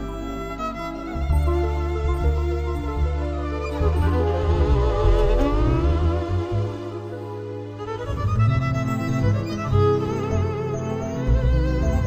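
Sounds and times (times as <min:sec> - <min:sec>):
violin melody with vibrato: 0:00.0 - 0:12.0.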